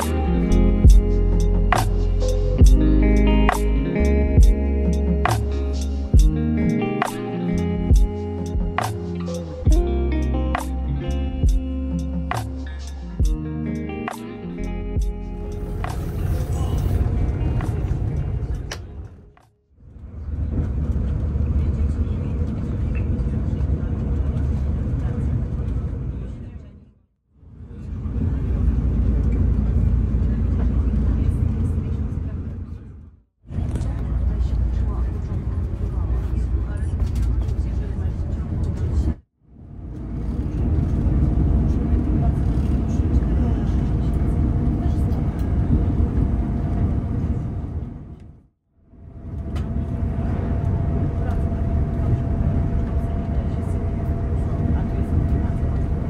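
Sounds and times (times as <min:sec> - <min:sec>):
background music: 0:00.0 - 0:18.8
diesel train rumbling: 0:00.0 - 0:26.8, 0:27.4 - 0:48.4, 0:49.0 - 0:56.0.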